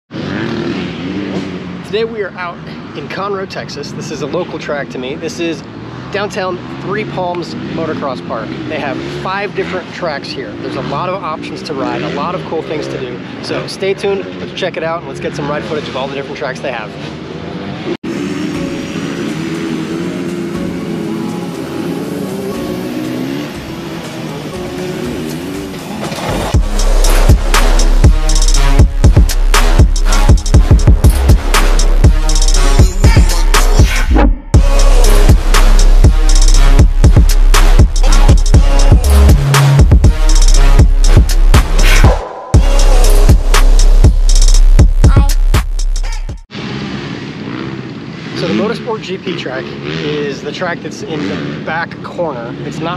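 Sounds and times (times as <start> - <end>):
dirt bike engines running: 0.1 - 34.0, 46.5 - 52.9
electronic music with deep bass: 18.3 - 46.5.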